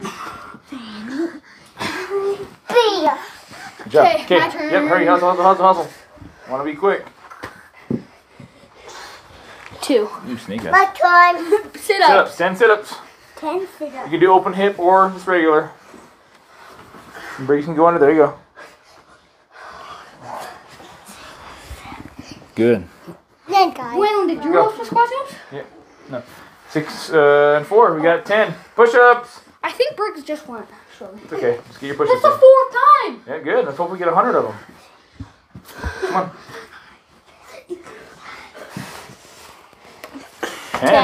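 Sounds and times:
people breathing hard: 0.0 - 2.6, 3.2 - 3.9, 7.2 - 9.8, 15.7 - 17.5, 18.4 - 23.4, 34.4 - 40.9
faint rustling: 1.4 - 32.6.

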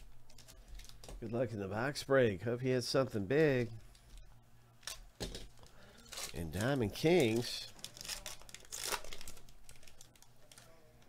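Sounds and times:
foil wrapper crinkling: 5.6 - 10.8.

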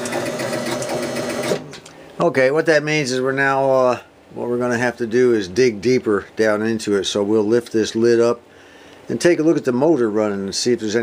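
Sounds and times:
pinball score motor humming and ticking: 0.0 - 1.7.

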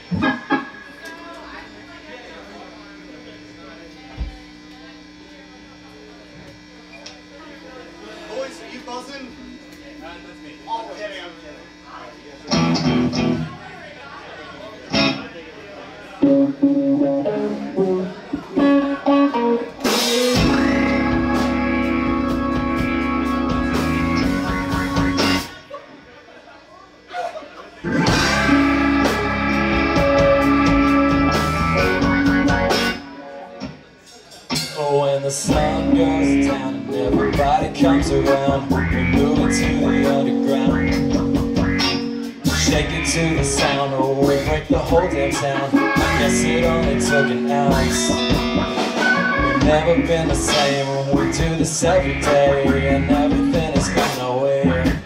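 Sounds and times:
drums: 0.0 - 1.7, 12.5 - 13.7, 16.2 - 25.7, 27.8 - 55.0
electric guitars: 0.0 - 1.9, 12.4 - 13.7, 14.9 - 15.4, 16.2 - 25.8, 27.8 - 33.9, 34.5 - 55.0
keyboard: 16.2 - 25.7, 27.8 - 33.6, 35.5 - 55.0.

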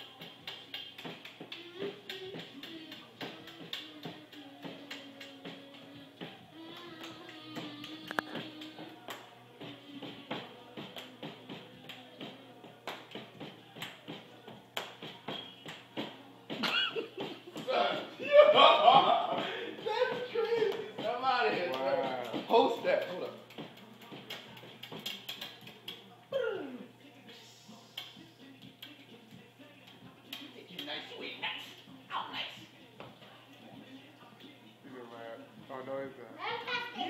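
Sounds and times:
loud voices: 0.0 - 30.8.

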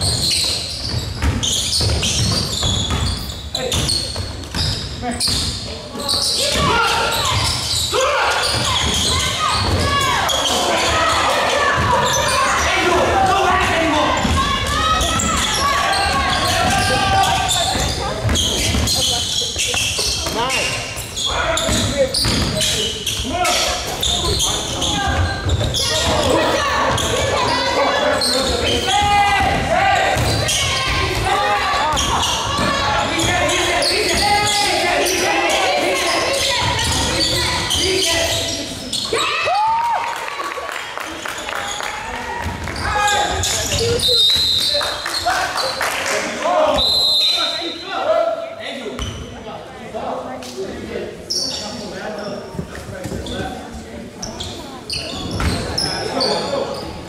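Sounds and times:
basketball bouncing on gym floor: 0.0 - 5.6, 14.2 - 20.4, 21.6 - 22.8
many overlapping voices: 0.0 - 57.0.

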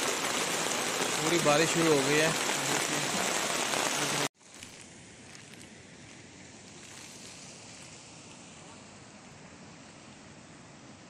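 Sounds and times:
heavy rain falling: 0.0 - 4.3
faint steady hiss: 3.9 - 11.0.

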